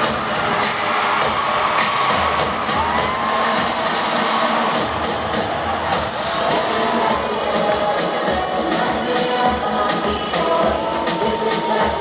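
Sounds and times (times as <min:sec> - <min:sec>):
crowd cheering: 0:00.0 - 0:08.3, 0:10.3 - 0:12.0
live pop music: 0:00.0 - 0:12.0.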